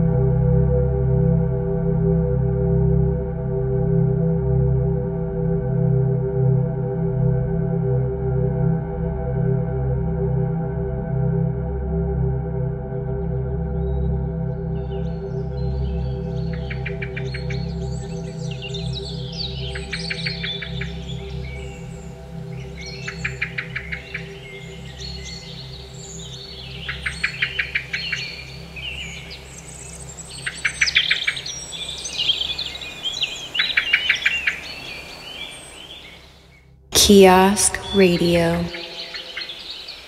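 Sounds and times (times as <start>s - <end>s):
ambient synth drone: 0.0s - 31.1s
bird trills and chirps: 16.4s - 21.7s, 22.6s - 36.3s, 38.7s - 40.0s.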